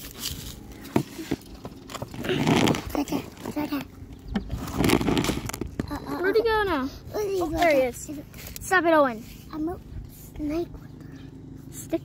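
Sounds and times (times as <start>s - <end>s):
rod scraping plastic jug: 0.0s - 3.8s, 4.4s - 5.9s.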